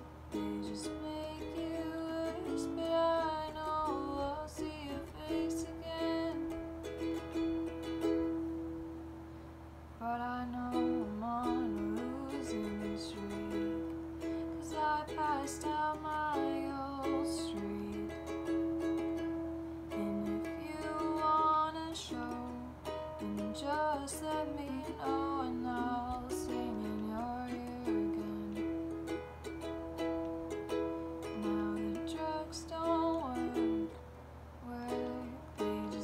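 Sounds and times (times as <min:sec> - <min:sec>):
woman singing: 0:00.0 - 0:08.3, 0:10.0 - 0:19.3, 0:19.9 - 0:30.0, 0:31.2 - 0:34.0, 0:34.6 - 0:36.0
ukulele strumming chords: 0:00.0 - 0:09.4, 0:10.0 - 0:36.0.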